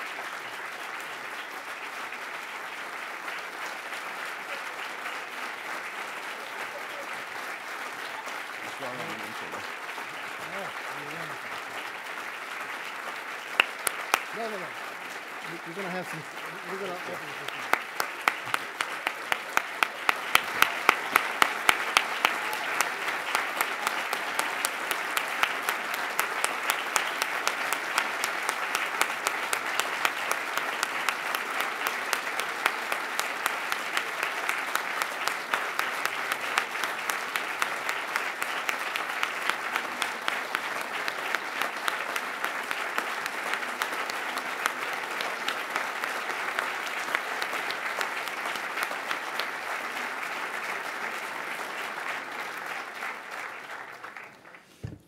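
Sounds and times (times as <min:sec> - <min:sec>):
audience applauding: 0:00.0 - 0:55.0.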